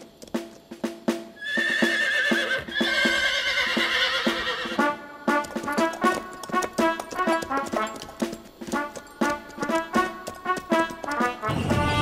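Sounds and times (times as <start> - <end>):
horse hooves clip-clopping: 0.0 - 12.0
background music: 0.4 - 12.0
horse whinnying: 1.4 - 5.0
brass notes: 4.2 - 12.0.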